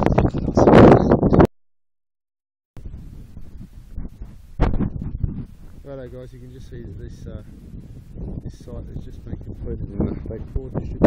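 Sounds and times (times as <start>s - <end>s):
wind on microphone: 0.0s - 1.5s, 2.8s - 11.0s.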